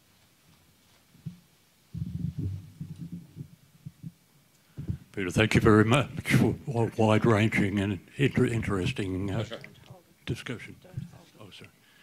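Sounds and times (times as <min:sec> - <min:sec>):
microphone handling thumps: 0:01.2 - 0:05.1, 0:10.9 - 0:11.2.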